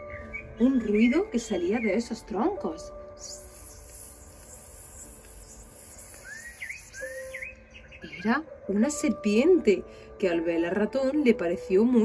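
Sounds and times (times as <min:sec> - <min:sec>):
snake hissing: 0:03.2 - 0:07.6
short bird chirps: 0:03.2 - 0:08.2.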